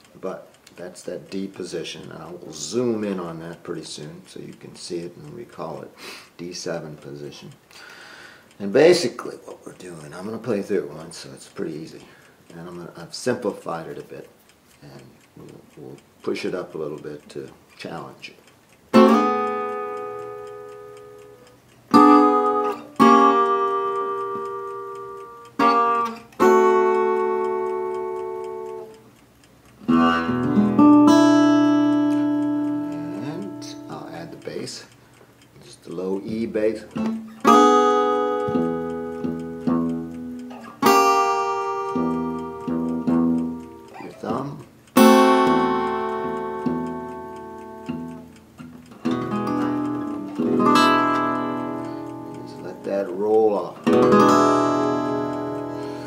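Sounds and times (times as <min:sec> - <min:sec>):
blues guitar chords ringing: 0:18.9 - 0:29.1, 0:29.8 - 0:34.4, 0:36.4 - 0:44.4, 0:45.0 - 0:56.0.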